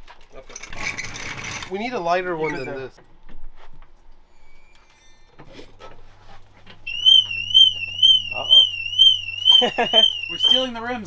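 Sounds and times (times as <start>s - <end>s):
car alarm warbling siren: 6.9s - 11.0s.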